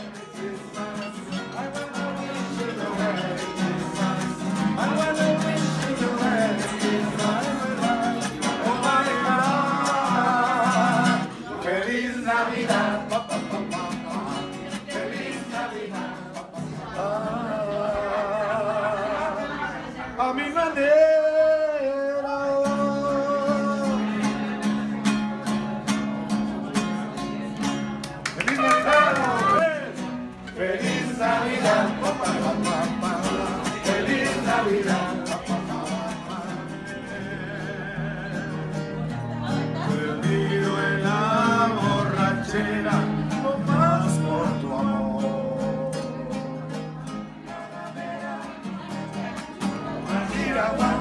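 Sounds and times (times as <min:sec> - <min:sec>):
two men singing in harmony: 0:00.0 - 0:24.6, 0:30.4 - 0:39.0, 0:39.8 - 0:51.0
acoustic guitars strumming: 0:00.0 - 0:51.0.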